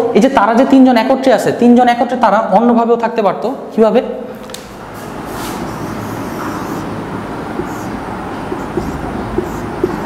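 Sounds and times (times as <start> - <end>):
steady rumbling: 4.7 - 10.0.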